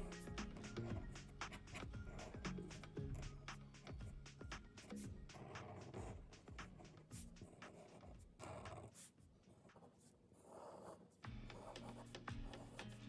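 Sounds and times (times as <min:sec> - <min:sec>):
marker scratching on paper: 0:00.0 - 0:13.0
quiet background music: 0:00.0 - 0:13.0.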